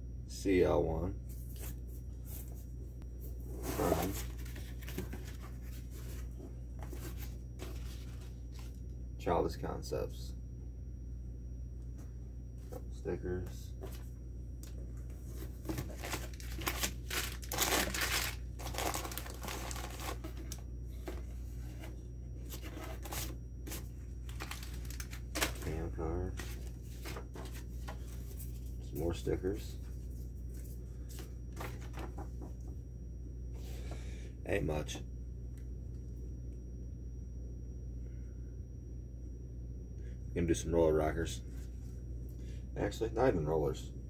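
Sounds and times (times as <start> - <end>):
faint high whine: 0.0 - 44.0
low electrical hum: 0.0 - 44.0
paper rustling and tearing: 15.7 - 20.5, 22.5 - 25.7.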